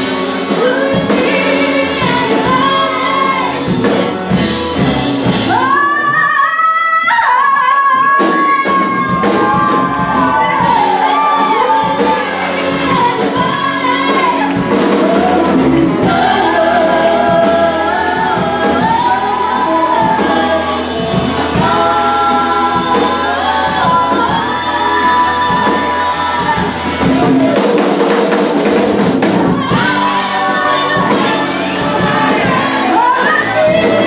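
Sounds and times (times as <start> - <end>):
drums: 0.0 - 34.0
women singing together: 0.1 - 4.2, 5.4 - 27.6, 29.4 - 34.0
electric guitar: 8.0 - 34.0.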